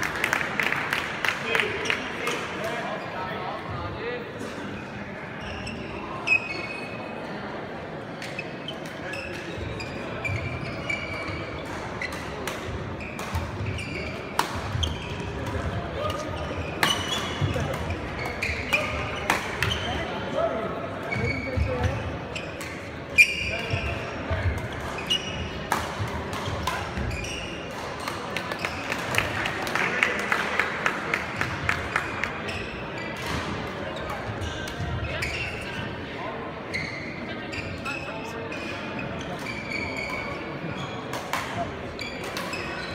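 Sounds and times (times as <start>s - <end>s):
voices in hall: 0.0s - 42.9s
shoes squeaking on floor: 5.3s - 7.1s, 8.2s - 12.3s, 12.9s - 20.1s, 21.1s - 25.6s, 26.4s - 28.9s, 32.0s - 33.3s, 34.0s - 35.8s, 36.6s - 41.1s, 41.9s - 42.9s.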